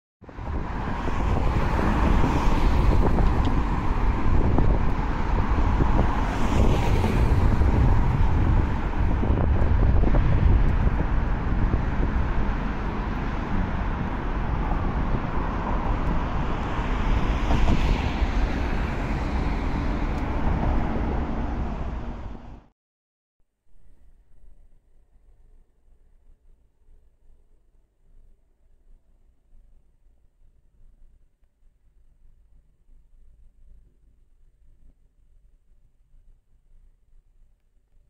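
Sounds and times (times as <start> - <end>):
wind rumble on microphone: 0.2 - 22.7
road traffic passing: 0.3 - 22.7.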